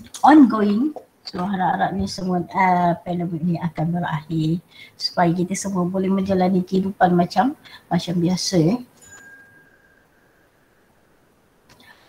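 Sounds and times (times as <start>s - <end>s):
single ding: 9.0s - 10.0s.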